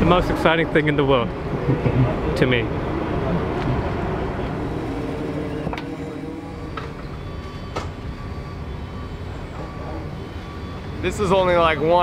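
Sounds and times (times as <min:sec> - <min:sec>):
machinery engine humming: 0:00.0 - 0:12.0.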